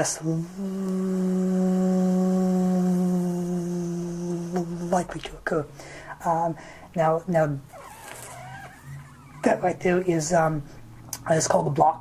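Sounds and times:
man humming steady mmm: 0.0 - 5.1.

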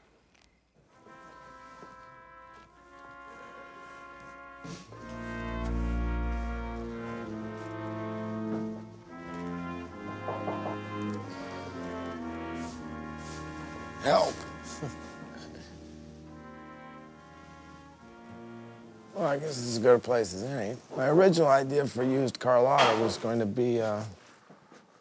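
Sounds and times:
brass ensemble playing chords: 0.9 - 20.5.

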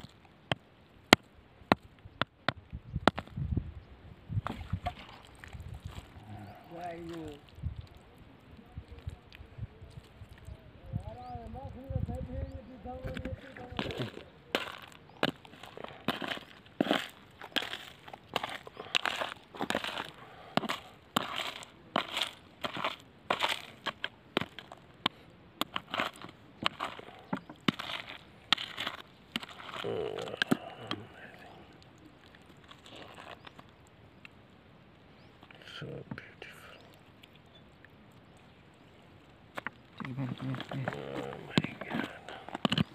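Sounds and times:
gravel crunching and clacking: 13.0 - 34.4, 39.5 - 42.9.

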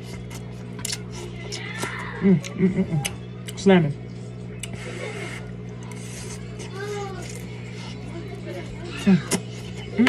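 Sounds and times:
chewing noodles: 0.0 - 3.6, 4.5 - 10.0
low steady hum: 0.0 - 10.0
faint voice: 4.6 - 10.0.

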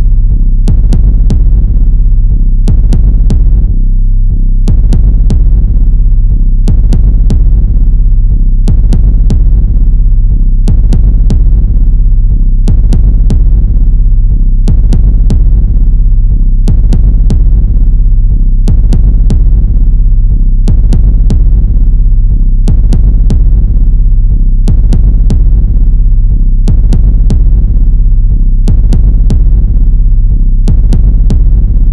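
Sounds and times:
sharp ticking beat: 0.0 - 3.7, 4.7 - 31.9
throbbing low drone: 0.0 - 31.9.

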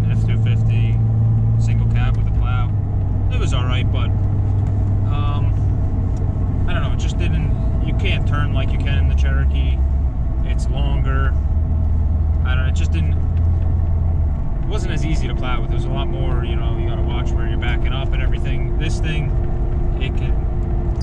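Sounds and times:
man talking: 0.0 - 1.0, 1.6 - 2.7, 3.3 - 4.1, 5.1 - 5.6, 6.7 - 9.8, 10.4 - 11.4, 12.4 - 13.2, 14.6 - 19.3, 19.9 - 20.4
engine and road drone in car: 0.0 - 21.0.

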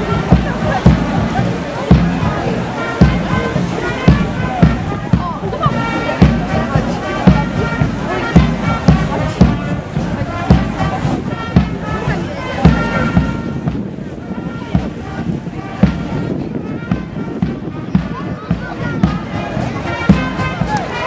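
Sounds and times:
bass drum beating: 0.0 - 21.0
brass band playing a march: 0.0 - 21.0.

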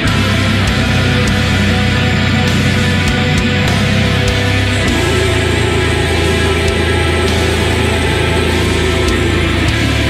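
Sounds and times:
doom metal music: 0.0 - 10.0.

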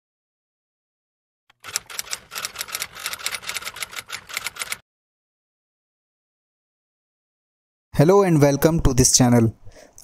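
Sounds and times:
typewriter key clacks: 1.5 - 4.8.

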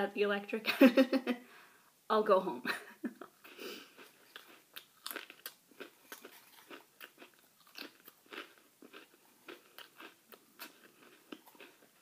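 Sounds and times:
crackers being crunched: 4.0 - 12.0.

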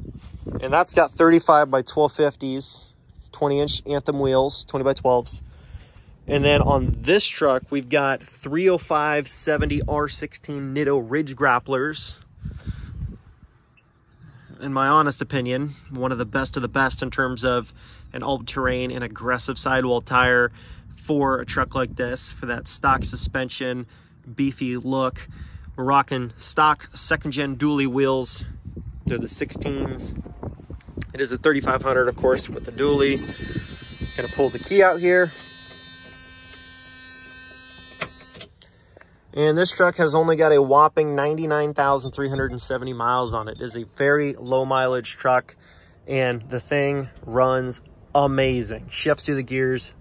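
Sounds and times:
low rumble on microphone: 3.0 - 8.4, 27.0 - 34.3
steady electrical buzz and hum: 29.3 - 38.6.

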